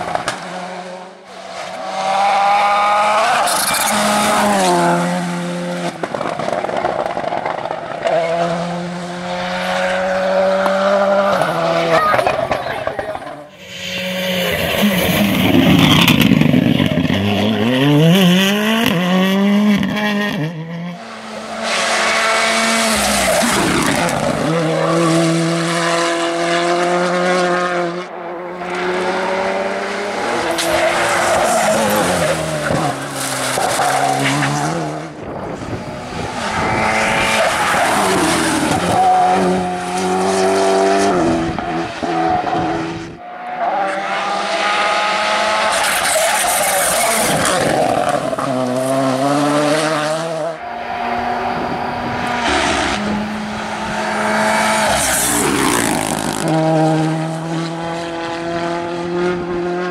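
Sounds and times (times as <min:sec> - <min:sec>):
engines revving through gear changes: 0:00.0 - 0:13.3, 0:13.9 - 0:59.9
rally cars passing at speed: 0:00.0 - 0:59.9
tyre noise on tarmac: 0:02.4 - 0:08.8, 0:44.7 - 0:49.5.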